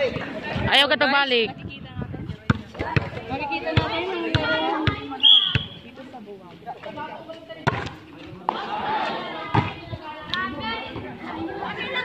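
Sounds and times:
chatter of people: 0:00.0 - 0:12.0
ball bouncing on concrete: 0:02.5 - 0:05.8, 0:07.6 - 0:08.6, 0:09.5 - 0:10.4.

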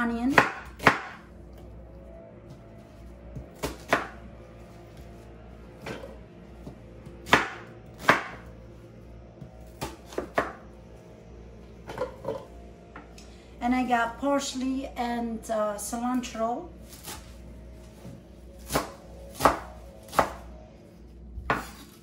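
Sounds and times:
knife chopping on wooden board: 0:00.3 - 0:01.2, 0:05.8 - 0:08.4, 0:21.4 - 0:21.9.

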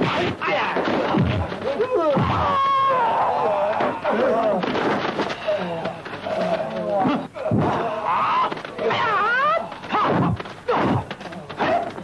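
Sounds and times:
punch and kick impacts: 0:00.0 - 0:02.8, 0:09.9 - 0:12.0
fighters shouting: 0:00.0 - 0:04.8.

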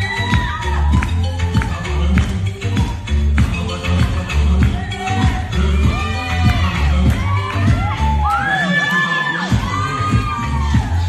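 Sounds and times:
girls cheering and whooping: 0:00.0 - 0:02.0, 0:04.8 - 0:11.0
dance music with heavy bass beat: 0:00.0 - 0:11.0.

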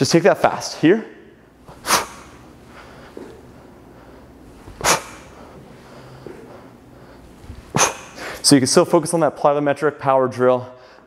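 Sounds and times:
man's forceful breaths: 0:01.6 - 0:08.5.

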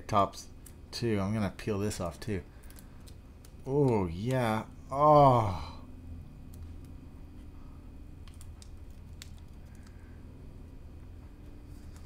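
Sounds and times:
small plastic clicks: 0:08.2 - 0:10.0.

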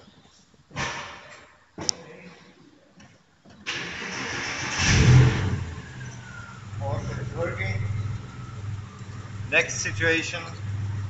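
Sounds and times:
car engine starting and idling: 0:03.7 - 0:11.0.

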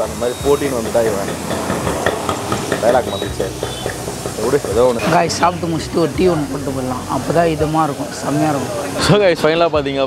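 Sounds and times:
traffic hiss: 0:00.0 - 0:10.0
voices talking: 0:00.0 - 0:10.0.

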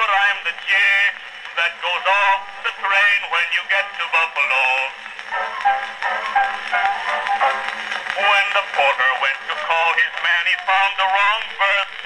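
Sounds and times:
man singing comic song: 0:00.0 - 0:05.0, 0:08.2 - 0:12.0
band accompaniment: 0:04.9 - 0:09.8.

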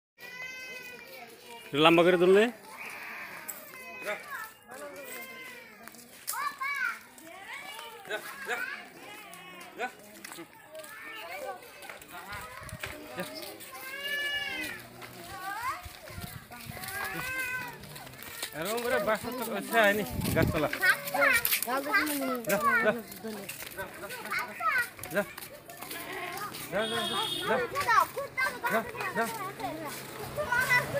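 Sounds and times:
children calling and chattering: 0:00.2 - 0:30.9.

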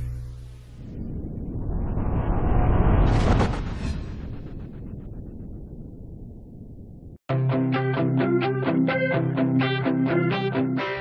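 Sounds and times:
low rumbling whoosh: 0:00.0 - 0:07.2.

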